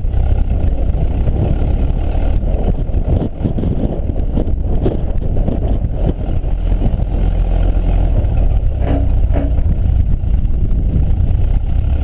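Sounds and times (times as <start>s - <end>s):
engine running while driving: 0.0s - 12.0s
wind buffeting microphone: 0.0s - 12.0s.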